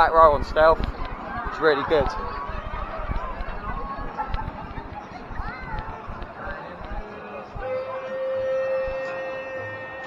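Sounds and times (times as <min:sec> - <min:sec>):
voices of passing crowd: 0:00.0 - 0:10.0
steady held note: 0:07.5 - 0:10.0.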